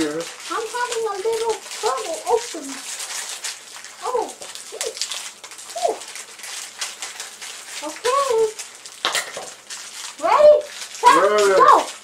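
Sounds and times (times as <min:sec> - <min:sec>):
plastic wrapper crinkling: 0:00.0 - 0:12.0.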